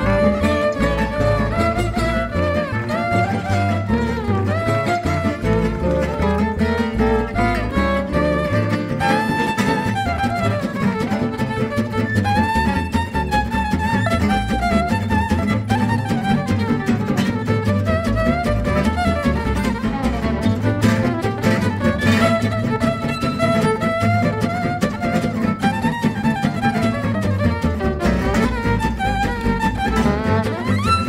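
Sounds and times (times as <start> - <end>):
jazz rhythm section: 0.0 - 31.0
violin lead melody: 0.0 - 31.0.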